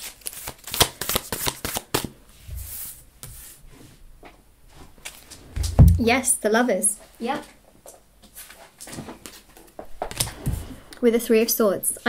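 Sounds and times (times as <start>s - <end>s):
cards being shuffled: 0.0s - 2.2s, 8.4s - 10.6s
dull thump: 5.5s - 6.2s.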